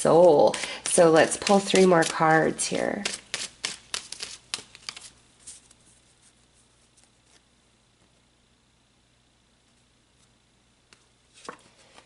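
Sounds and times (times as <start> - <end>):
faint room hiss: 0.0 - 12.0
card being handled: 0.5 - 5.9
card tapping and snapping: 3.0 - 5.1.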